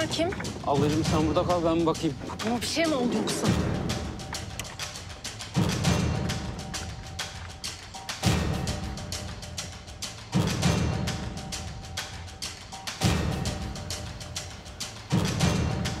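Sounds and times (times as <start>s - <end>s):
fast ticking percussion: 0.0s - 16.0s.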